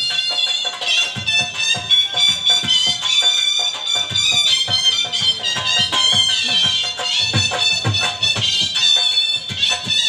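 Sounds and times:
dhol drum strokes: 0:00.0 - 0:10.0
shehnai high reedy note: 0:00.0 - 0:10.0.

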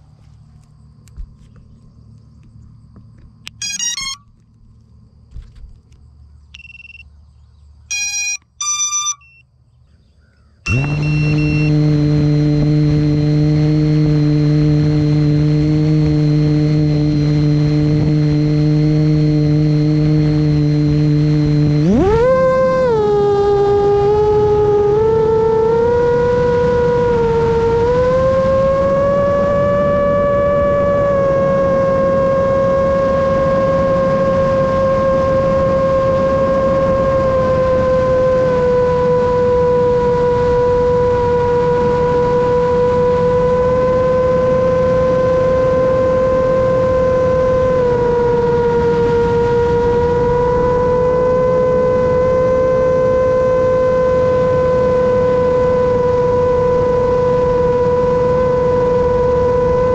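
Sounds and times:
short electronic beeps: 0:03.5 - 0:04.3, 0:06.5 - 0:07.1, 0:07.9 - 0:09.5, 0:10.7 - 0:11.8
quadcopter motors whining: 0:07.9 - 0:09.4, 0:10.6 - 0:59.9.

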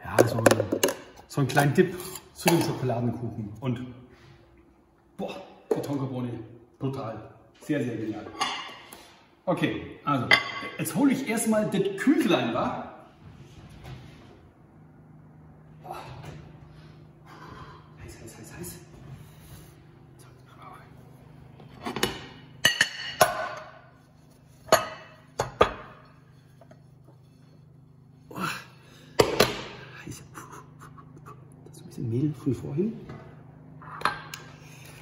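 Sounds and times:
low steady hum: 0:00.0 - 0:35.0.

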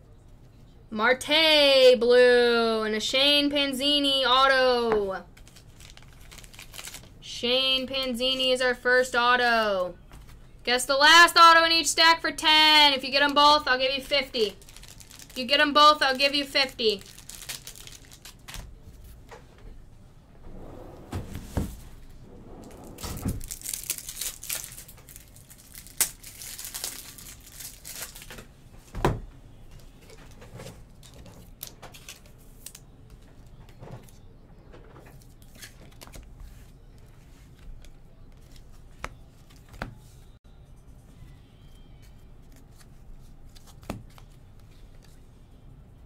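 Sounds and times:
card packaging crinkling and rustling: 0:05.3 - 0:07.2, 0:14.5 - 0:19.2, 0:22.6 - 0:28.5, 0:29.7 - 0:34.3, 0:35.1 - 0:40.0.

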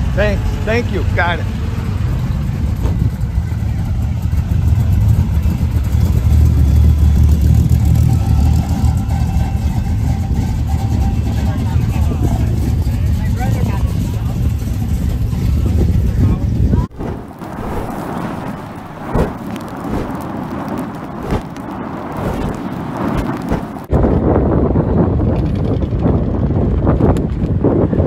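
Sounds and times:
low rumble: 0:00.0 - 0:28.0.

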